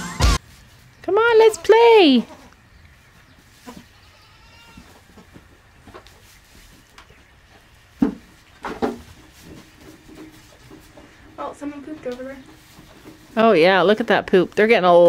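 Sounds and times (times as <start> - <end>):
goats bleating: 3.6 - 5.0.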